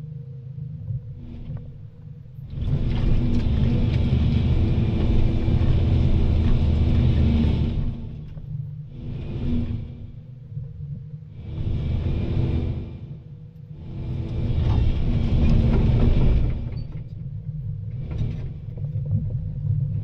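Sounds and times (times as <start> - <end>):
excavator diesel engine running: 2.5 - 10.4, 11.3 - 17.1
loud rushing surge: 11.4 - 13.2.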